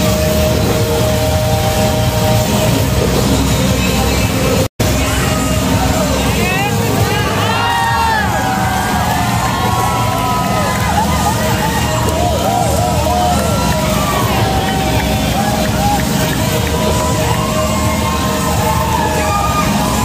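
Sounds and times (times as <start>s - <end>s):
crowd voices and cheering: 0.0s - 20.0s
motorcycle engine running hard: 0.0s - 20.0s.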